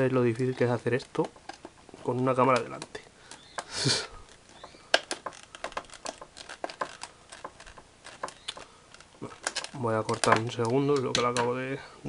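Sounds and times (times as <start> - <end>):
plastic packaging crackling: 0.0 - 11.5.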